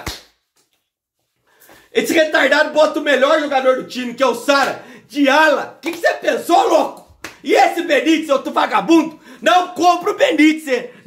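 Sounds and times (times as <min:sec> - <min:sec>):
faint breath: 0:01.4 - 0:02.0, 0:04.8 - 0:05.1
man speaking: 0:01.9 - 0:11.0.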